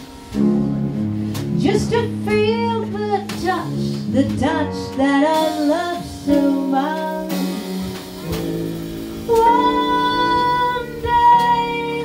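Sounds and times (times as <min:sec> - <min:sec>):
small jazz band playing: 0:00.0 - 0:12.0
woman singing: 0:01.5 - 0:07.9, 0:09.2 - 0:12.0.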